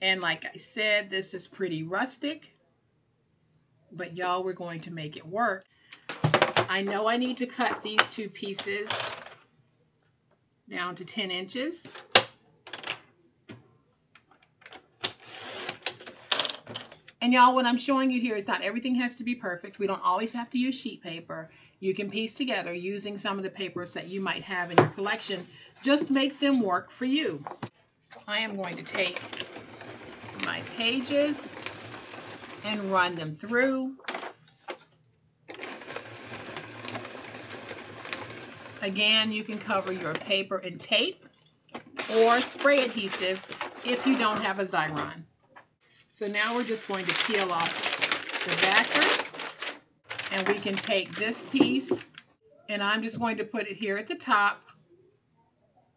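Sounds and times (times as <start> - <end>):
blade rasping through paper: 28.7 - 33.0
hand-cranked machine churning: 28.7 - 33.2, 35.5 - 40.2, 46.5 - 51.8.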